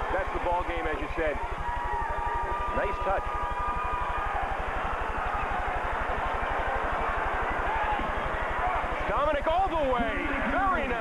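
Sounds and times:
crowd of voices in arena: 0.0 - 11.0.

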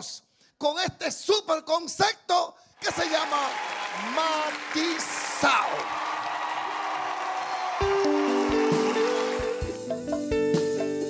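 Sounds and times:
applause: 2.8 - 9.9
live band playing: 7.4 - 11.0.

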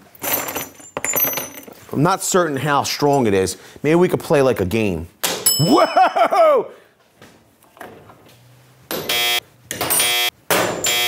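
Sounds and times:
electronic buzzer tones: 9.0 - 9.4, 10.0 - 11.0.

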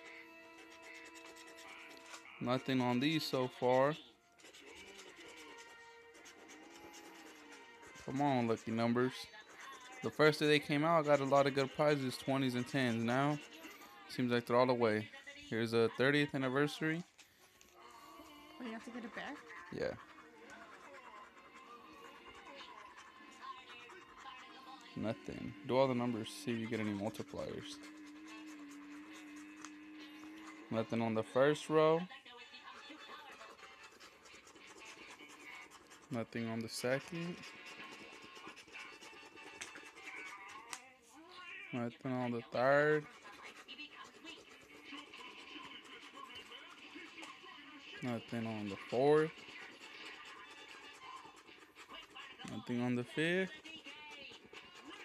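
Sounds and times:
coin scratching ticket: 0.0 - 17.2, 20.8 - 31.9
background music of held tones: 0.0 - 23.4, 24.1 - 33.1.

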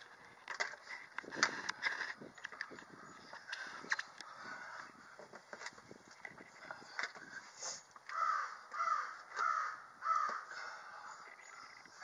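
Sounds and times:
crow cawing: 8.1 - 11.8.

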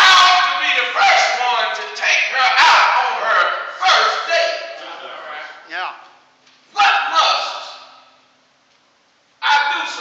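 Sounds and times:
man preaching: 0.0 - 5.9, 6.7 - 8.0, 9.4 - 10.0.

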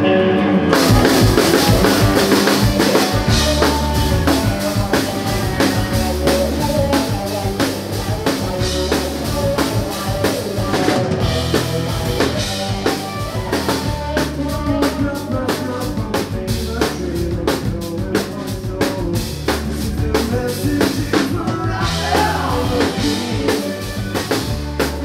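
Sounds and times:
live band playing: 0.0 - 25.0
drum kit beat: 0.7 - 25.0.

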